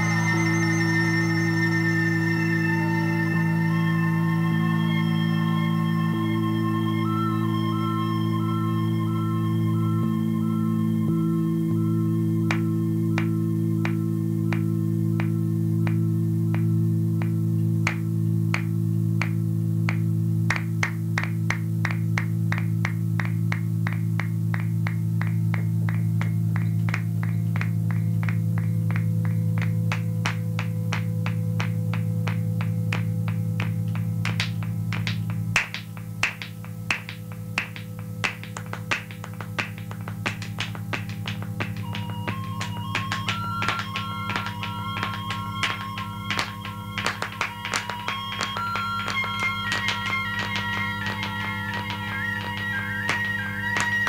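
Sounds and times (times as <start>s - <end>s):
high stepped tone melody: 0.0s - 54.0s
low electronic drone: 0.0s - 54.0s
ticking electronic pulse: 0.0s - 54.0s.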